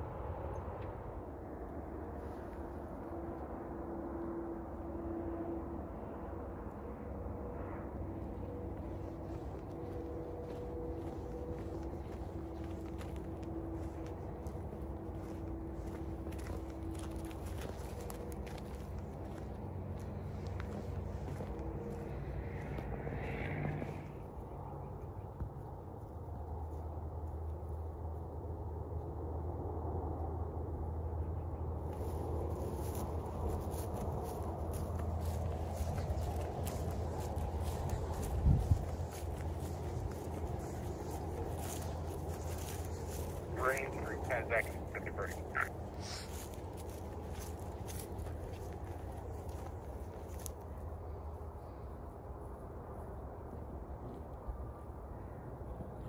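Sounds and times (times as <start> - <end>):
faint hum: 0.0 - 56.0.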